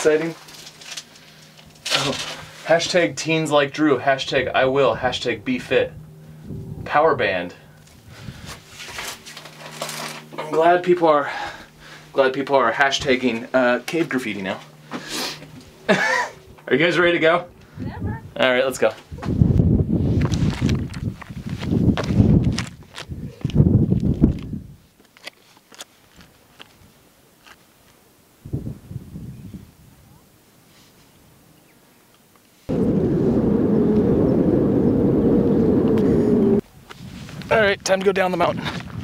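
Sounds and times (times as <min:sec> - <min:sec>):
wind buffeting microphone: 0:04.3 - 0:07.3, 0:07.9 - 0:08.7, 0:17.5 - 0:24.8, 0:28.4 - 0:30.2, 0:32.7 - 0:39.0.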